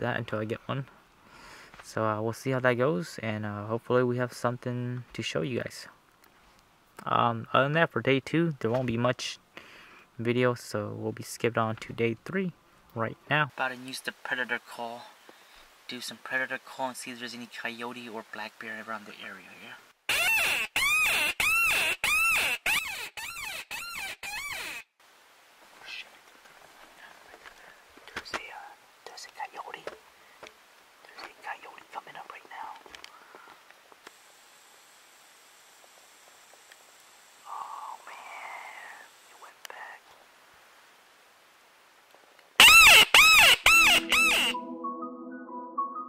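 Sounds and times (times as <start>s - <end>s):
wailing predator call: 42.6s - 44.6s.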